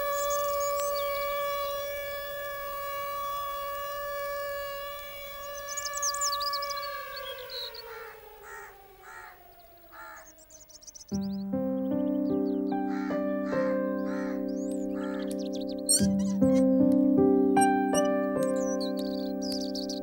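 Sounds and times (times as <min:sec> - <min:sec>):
siren-like wail: 0:00.0 - 0:10.7
small birds chirping: 0:00.0 - 0:20.0
crows cawing: 0:07.2 - 0:10.9, 0:12.8 - 0:16.5.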